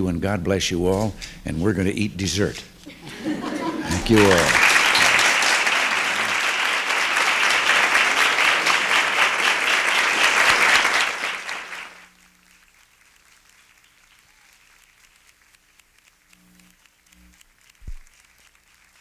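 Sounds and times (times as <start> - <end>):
audience applauding: 3.0 - 16.3, 16.9 - 19.0
faint low hum: 11.1 - 19.0.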